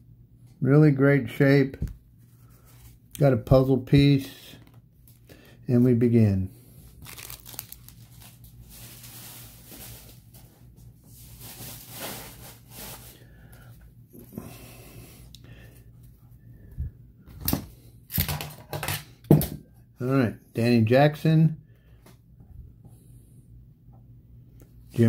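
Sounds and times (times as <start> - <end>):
cards rustling by hand: 6.8 - 10.6.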